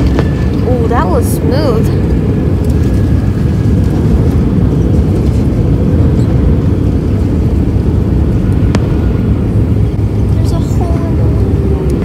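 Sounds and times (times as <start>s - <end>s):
deep rumble of landing gear and engines: 0.0s - 12.0s.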